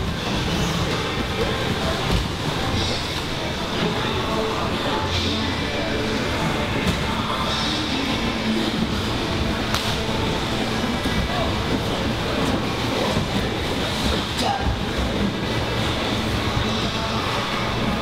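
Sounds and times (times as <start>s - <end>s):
voices and bodies on mats: 0.0s - 18.0s
sharp slaps: 9.7s - 10.0s.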